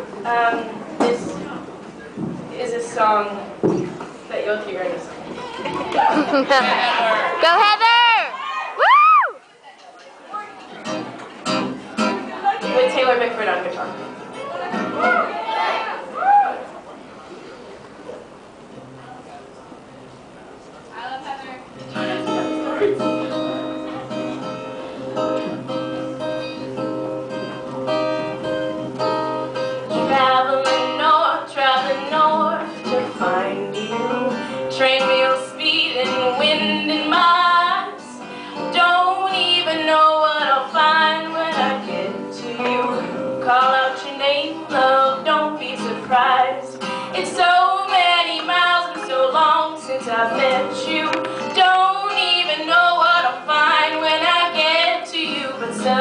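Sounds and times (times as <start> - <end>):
acoustic guitar playing: 10.0 - 16.0, 18.6 - 20.4, 21.1 - 56.0
woman singing: 29.9 - 56.0.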